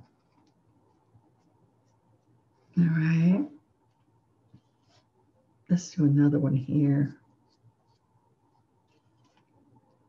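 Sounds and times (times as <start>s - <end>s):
paintbrush dabbing paint on paper: 0.0s - 5.4s, 7.1s - 10.0s.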